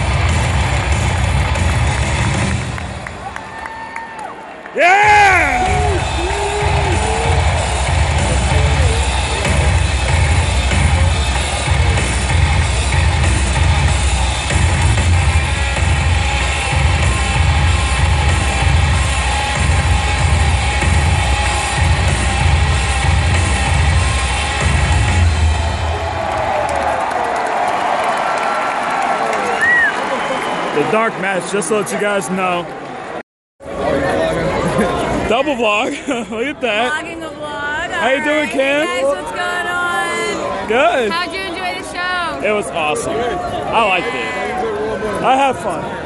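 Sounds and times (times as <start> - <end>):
loud music with pulsing bass: 0.0 - 2.8, 5.1 - 26.0
crowd cheering: 0.0 - 33.2.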